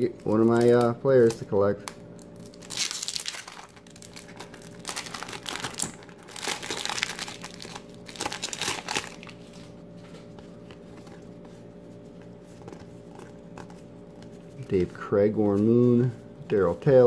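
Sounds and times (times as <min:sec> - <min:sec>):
plastic wrapper crinkling and tearing: 0:00.1 - 0:09.8.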